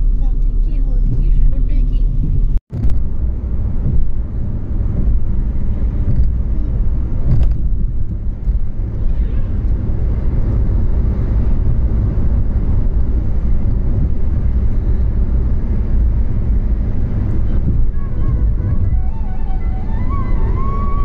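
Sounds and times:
car cabin road and engine rumble: 0:00.0 - 0:21.0.

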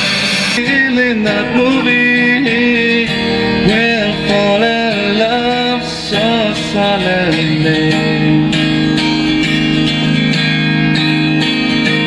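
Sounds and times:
live rock band music: 0:00.0 - 0:12.0.

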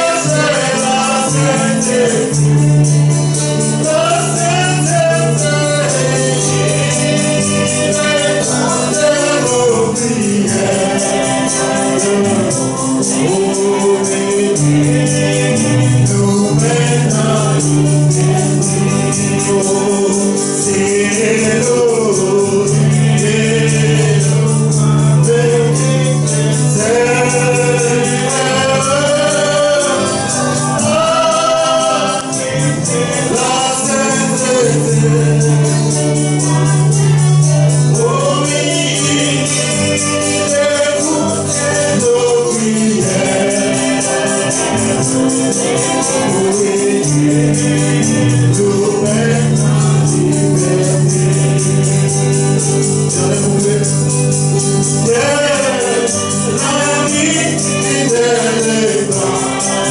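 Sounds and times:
choir singing gospel: 0:00.0 - 0:59.9
man singing into a microphone: 0:00.0 - 0:59.9
shaking percussion beat: 0:00.0 - 0:59.9.

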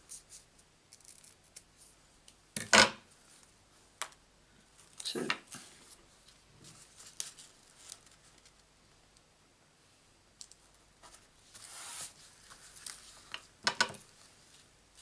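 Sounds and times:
ribbon and tape rustling: 0:04.8 - 0:08.7, 0:10.5 - 0:15.0.

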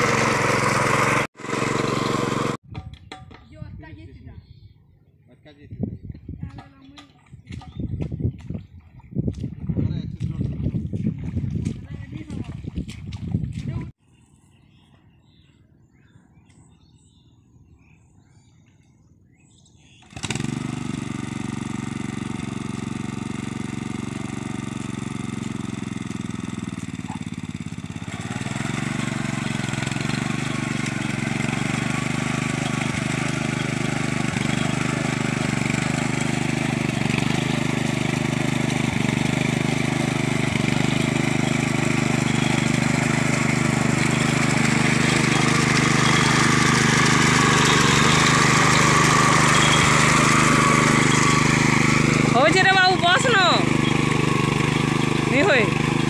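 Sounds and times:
power tiller engine running: 0:00.0 - 0:02.6, 0:20.0 - 0:56.0
tiller churning through mud: 0:00.0 - 0:02.6, 0:20.0 - 0:56.0.

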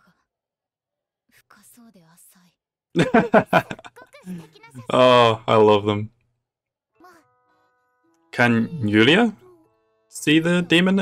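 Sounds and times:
faint cartoon character voice: 0:03.7 - 0:06.0, 0:07.0 - 0:07.3, 0:08.4 - 0:09.7.

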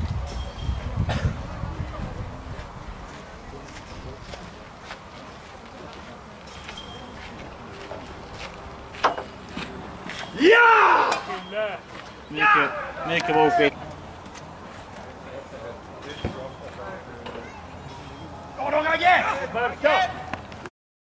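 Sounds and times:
low outdoor background: 0:00.0 - 0:20.7
man calling out loudly: 0:12.3 - 0:13.7.

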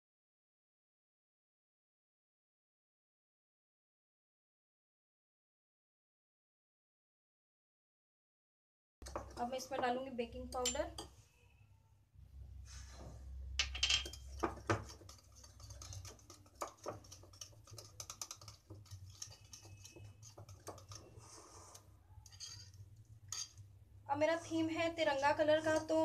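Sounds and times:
whisk scraping glass bowl: 0:14.1 - 0:23.6, 0:24.9 - 0:26.0.

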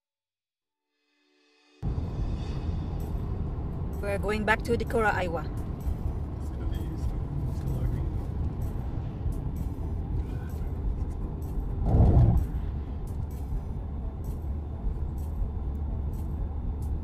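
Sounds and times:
car road rumble from inside cabin: 0:02.8 - 0:17.0.

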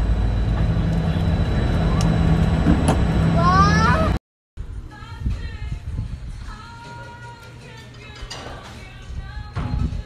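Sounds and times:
aircraft cabin rumble: 0:00.0 - 0:04.2
child calling out: 0:03.4 - 0:04.2.

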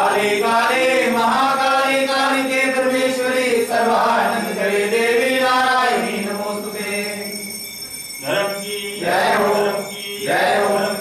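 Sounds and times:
voices chanting: 0:00.0 - 0:07.5, 0:08.2 - 0:11.0
steady held tone: 0:00.0 - 0:11.0.

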